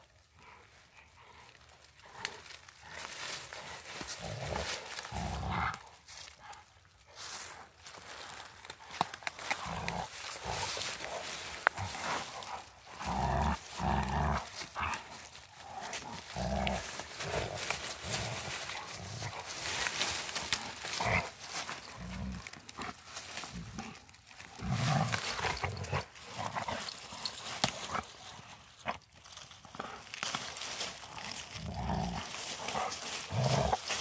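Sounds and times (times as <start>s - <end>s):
brushwood rustling and crackling: 0.0s - 34.0s.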